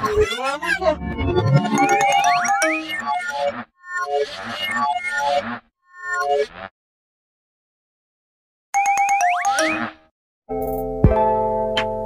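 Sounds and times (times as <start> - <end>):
cartoon laugh: 0.0 - 1.0.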